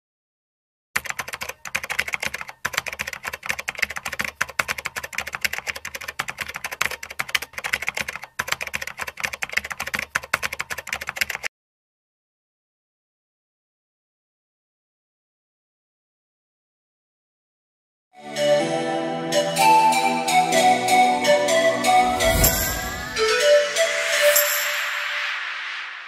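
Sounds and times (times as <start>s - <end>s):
keyboard typing clicks: 1.0s - 11.5s.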